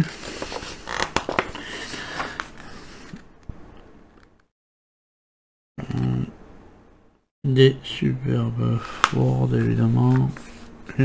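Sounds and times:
paper rustling: 0.0s - 3.3s, 8.8s - 10.7s.

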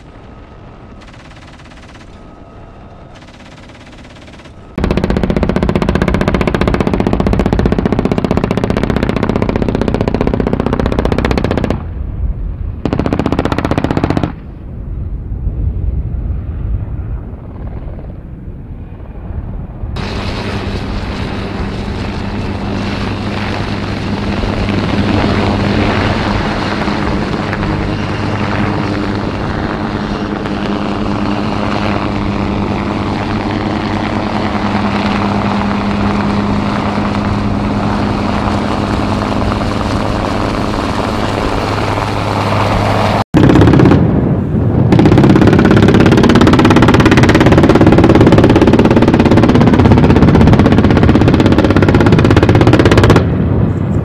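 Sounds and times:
helicopter in flight: 0.0s - 14.8s, 15.4s - 54.0s.

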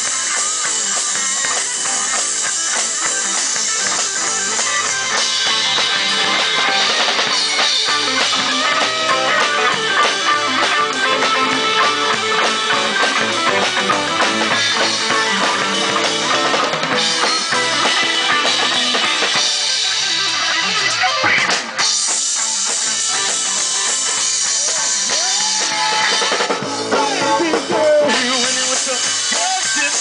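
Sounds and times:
bass guitar: 0.0s - 30.0s
drum kit with cymbals: 0.0s - 30.0s
electric guitars: 0.0s - 30.0s.

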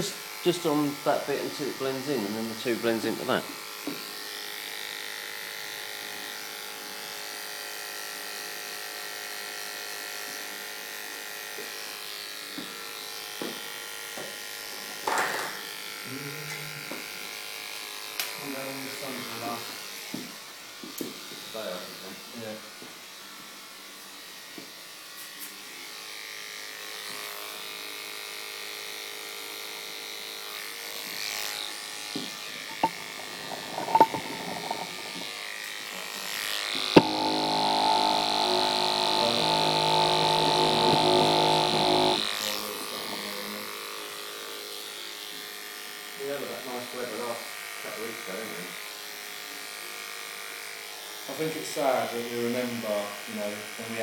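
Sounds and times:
electric hair clippers buzzing: 0.0s - 54.0s.

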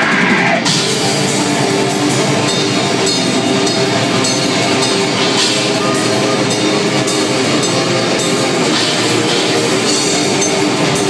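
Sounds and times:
distorted electric guitars: 0.0s - 11.0s
fast drumming with cymbals: 0.0s - 11.0s.

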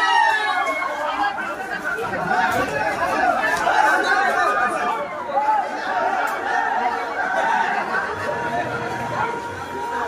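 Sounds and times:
people chattering excitedly: 0.0s - 10.0s.

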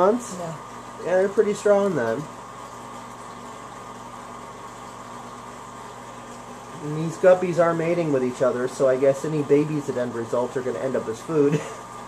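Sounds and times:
aquarium water pumps humming: 0.0s - 12.0s.

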